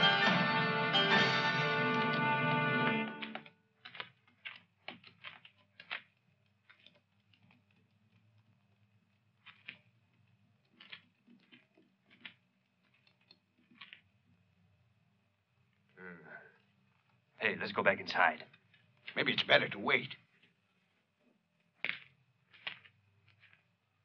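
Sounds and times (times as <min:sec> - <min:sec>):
film score music: 0:00.0 - 0:03.5.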